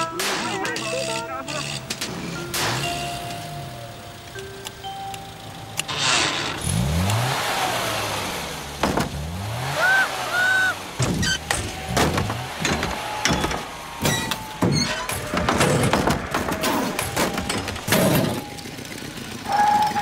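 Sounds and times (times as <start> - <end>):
background music: 0.0 - 6.2
cartoon car engine revving: 5.8 - 14.1, 14.9 - 20.0
short squeaks: 5.9 - 6.7, 13.3 - 15.4
bumper knocks: 8.8 - 9.2, 11.0 - 18.4.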